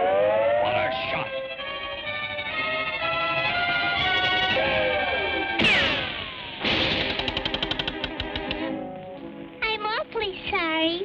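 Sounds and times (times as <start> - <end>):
cartoon orchestral music: 0.0 - 9.3
sudden hit: 5.6 - 8.1
fast rattle of ticks: 7.0 - 8.6.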